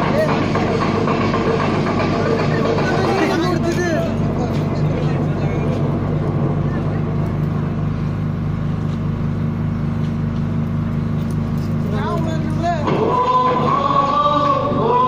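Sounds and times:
truck engine humming: 0.0 - 15.0.

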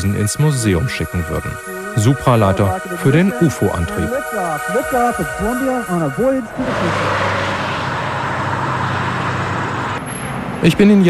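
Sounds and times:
rocket exhaust roar: 6.4 - 10.6.

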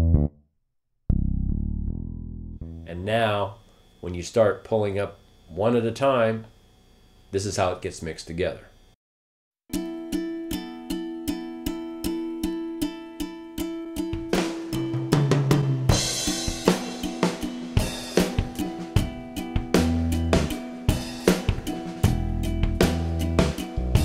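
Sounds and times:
bass guitar: 0.0 - 0.4, 1.1 - 3.0, 14.3 - 24.0
string instruments playing rhythm: 9.7 - 24.0
drum kit with cymbals: 14.1 - 24.0.

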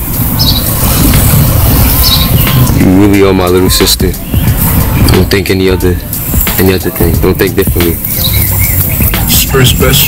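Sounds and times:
low traffic rumble: 0.0 - 10.0.

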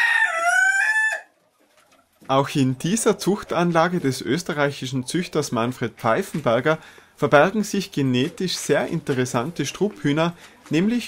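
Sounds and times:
rooster crowing: 0.0 - 1.3.

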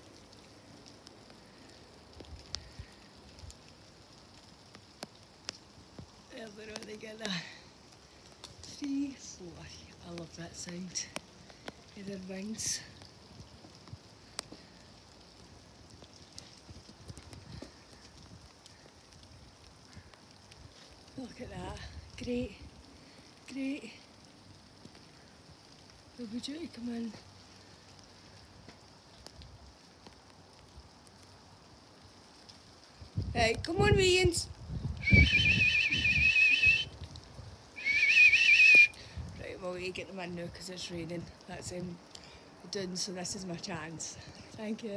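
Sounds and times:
warbling whistle: 35.0 - 36.9, 37.8 - 39.0.

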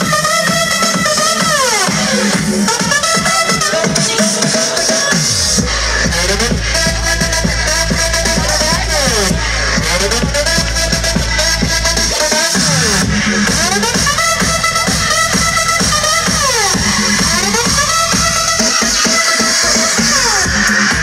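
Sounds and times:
loud electronic dance music: 0.0 - 21.0.

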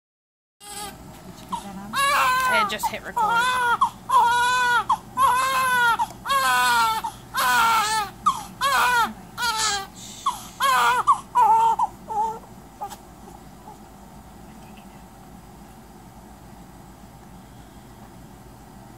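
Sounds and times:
newborn baby crying: 0.6 - 13.0.

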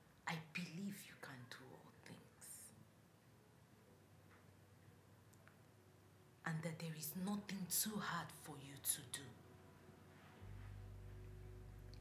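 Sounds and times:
woman whispering: 0.3 - 2.8.

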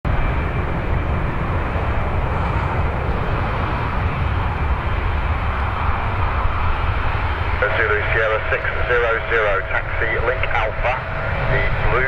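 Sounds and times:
jet engines taxiing: 0.1 - 12.0.

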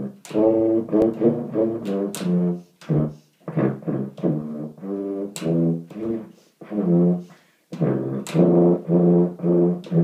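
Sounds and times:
solo tuba playing: 0.0 - 10.0.

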